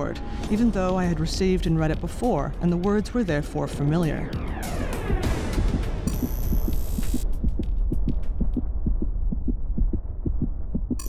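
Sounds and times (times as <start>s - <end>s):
low hum: 4.2s - 11.0s
racing heartbeat thuds: 4.4s - 11.0s.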